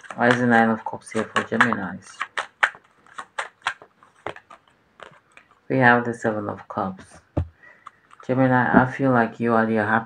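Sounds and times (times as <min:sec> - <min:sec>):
cards snapping and clicking: 0:00.0 - 0:05.6.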